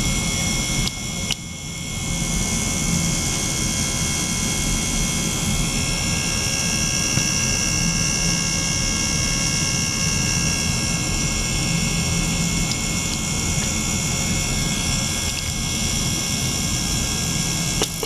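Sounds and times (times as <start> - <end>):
low hum: 0.0 - 18.0.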